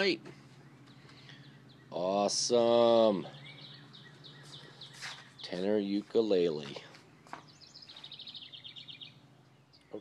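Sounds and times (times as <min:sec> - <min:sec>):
bird trilling: 0:00.0 - 0:05.9, 0:07.1 - 0:10.0.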